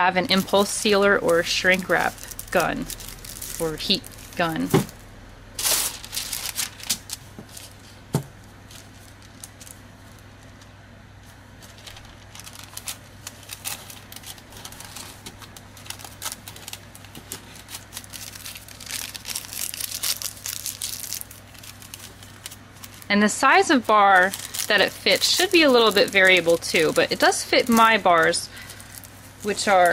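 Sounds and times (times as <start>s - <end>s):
wax paper crinkling: 0.0s - 29.9s.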